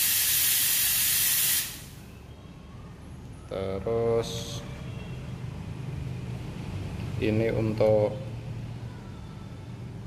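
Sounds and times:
espresso machine steam wand hissing: 0:00.0 - 0:02.0.

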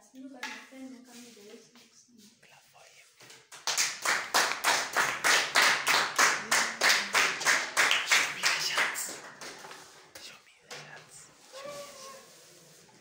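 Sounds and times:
hands clapping rhythmically: 0:03.3 - 0:10.3.

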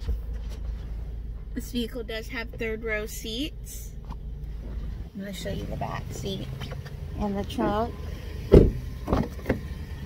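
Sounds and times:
car door thumping shut: 0:08.4 - 0:09.7
car door knocks and clicks: 0:08.5 - 0:09.7.

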